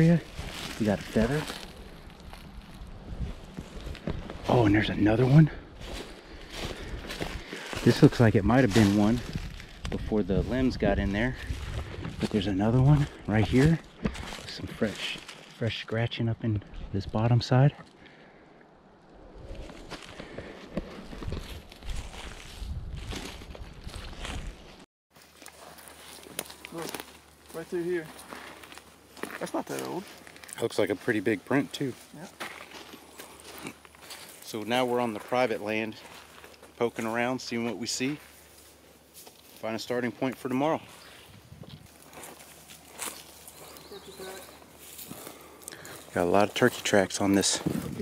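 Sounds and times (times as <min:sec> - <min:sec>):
footsteps crunching through dry leaves: 0:00.0 - 0:15.6, 0:19.5 - 0:48.0
wind rumbling on microphone: 0:01.2 - 0:04.5, 0:09.2 - 0:12.4, 0:19.0 - 0:19.9, 0:20.9 - 0:24.8, 0:41.2 - 0:41.9, 0:47.6 - 0:48.0.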